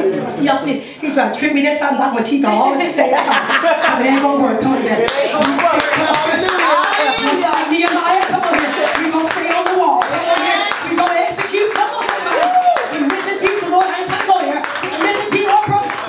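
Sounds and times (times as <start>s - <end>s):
voices calling out: 3.2s - 16.0s
rhythmic hand clapping: 5.0s - 16.0s.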